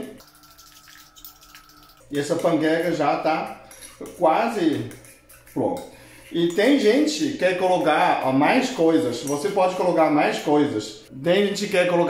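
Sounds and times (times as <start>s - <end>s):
spoon stirring batter in bowl: 0.2s - 10.4s.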